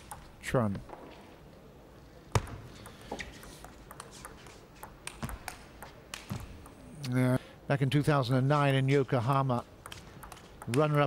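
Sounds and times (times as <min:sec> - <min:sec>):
low hall ambience: 0:00.0 - 0:11.0
table tennis ball clicks: 0:02.4 - 0:06.8, 0:09.2 - 0:11.0.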